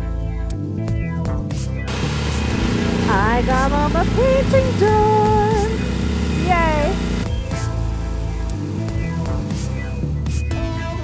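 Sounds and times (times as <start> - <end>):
low outdoor rumble: 1.9 - 9.5
woman's sing-song voice: 3.0 - 7.0.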